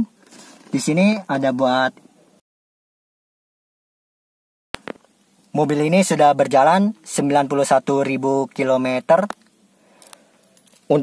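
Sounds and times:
man speaking: 0.7s - 2.0s, 5.6s - 9.4s
car keys jingling: 10.0s - 11.0s.

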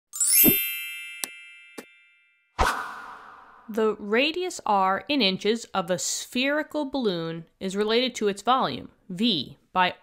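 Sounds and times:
bright ringing chime: 0.2s - 2.6s
rising sweep: 2.6s - 3.8s.

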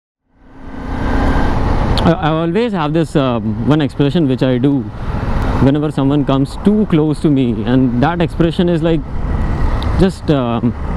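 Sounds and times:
wind rushing on helmet camera: 0.5s - 2.0s, 4.9s - 10.9s.

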